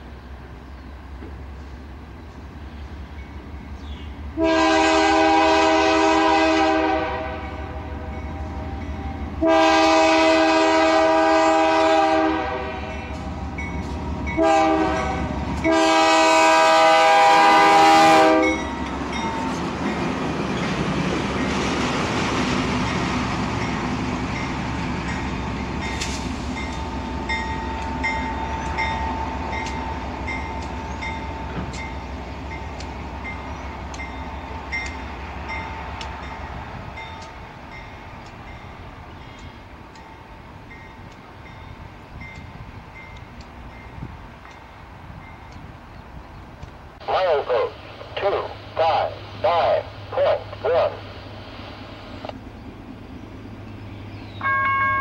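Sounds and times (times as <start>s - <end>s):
train rumbling past: 0.0s - 55.0s
locomotive air horn blasts: 4.4s - 8.2s, 9.4s - 13.0s, 14.4s - 18.7s.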